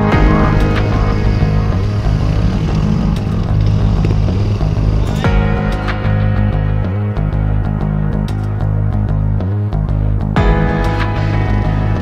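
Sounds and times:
music with heavy bass line: 0.0 - 12.0.

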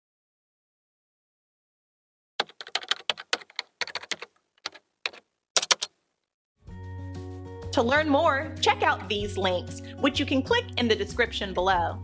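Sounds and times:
computer keyboard typing: 2.4 - 6.0.

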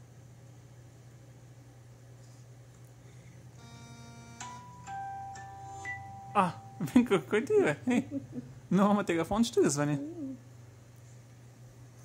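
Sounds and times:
faint low hum: 0.0 - 12.0
phone ringtone melody: 3.6 - 6.9.

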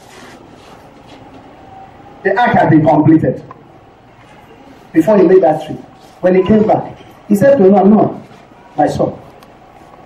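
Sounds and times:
room hiss and rumble: 0.0 - 10.0.

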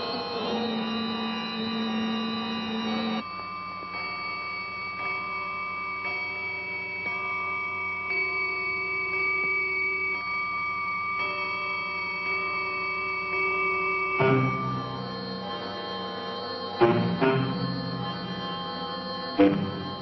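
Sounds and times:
droning chords: 14.0 - 20.0.

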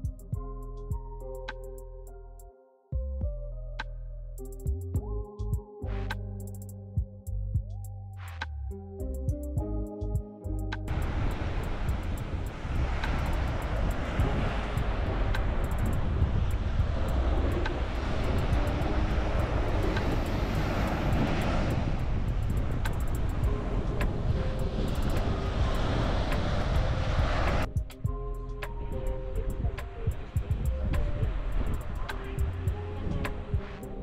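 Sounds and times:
background music: 0.0 - 34.0
waves on beach: 10.9 - 27.7
wind buffeting microphone: 10.9 - 34.0.

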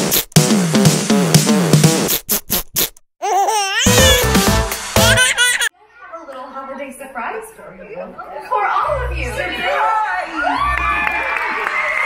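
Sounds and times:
young child laughing: 3.2 - 4.3, 5.0 - 5.7.

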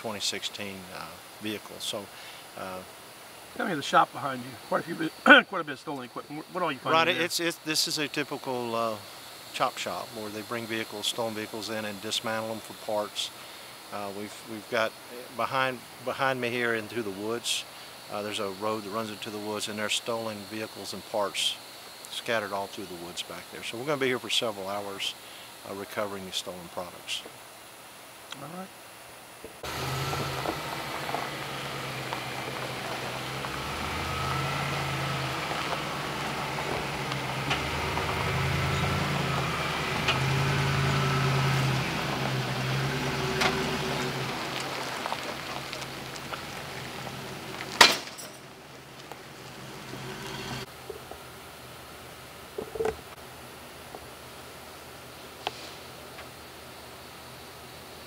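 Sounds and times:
tow truck engine under load: 29.6 - 50.8.

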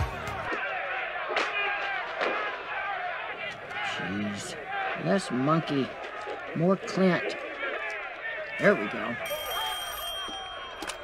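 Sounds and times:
movie soundtrack on television: 0.0 - 9.7
telephone bell ringing: 9.2 - 11.0.

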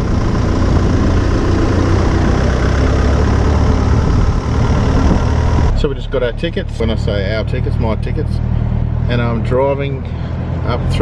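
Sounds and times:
car engine drone: 0.0 - 11.0
road noise: 0.0 - 11.0.

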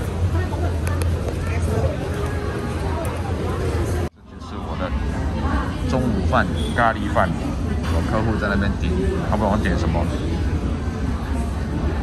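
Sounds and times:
indistinct chatter of people: 0.0 - 12.0.

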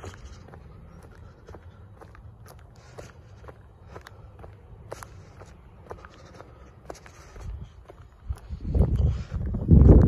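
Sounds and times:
footsteps on concrete: 0.0 - 10.0
steady low rumble: 0.0 - 10.0.

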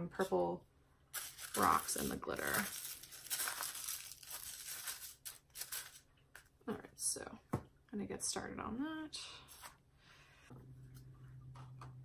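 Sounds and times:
plastic wrap crinkling: 1.1 - 6.5
stick stirring crystals in cup: 1.2 - 6.0.

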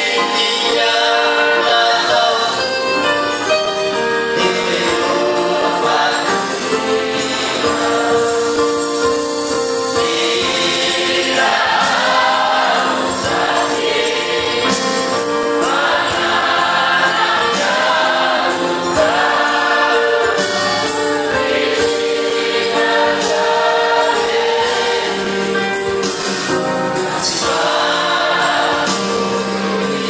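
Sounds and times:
choir singing a hymn: 0.0 - 30.0
jingling percussion beat: 0.0 - 30.0.

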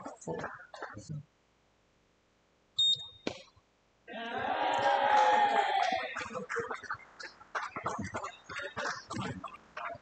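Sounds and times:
high electronic beep: 2.8 - 3.2.

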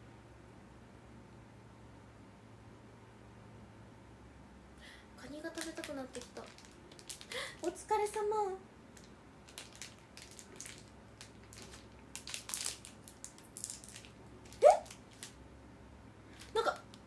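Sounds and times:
rustling and clicking of handling: 9.0 - 15.4.

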